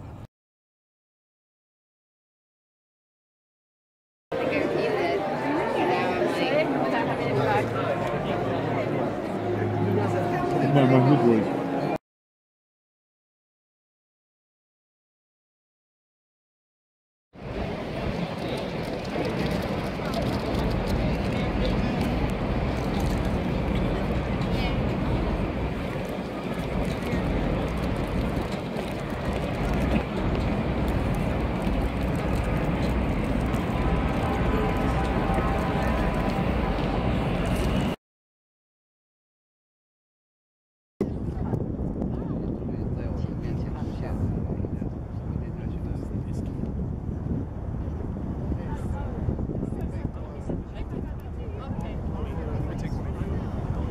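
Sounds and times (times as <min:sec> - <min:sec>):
crowd voices: 0:04.4 - 0:12.0, 0:17.4 - 0:38.0
traffic noise: 0:04.4 - 0:12.0, 0:17.4 - 0:38.0
low rumble: 0:17.4 - 0:38.0
wind on microphone: 0:17.4 - 0:38.0, 0:41.0 - 0:53.9.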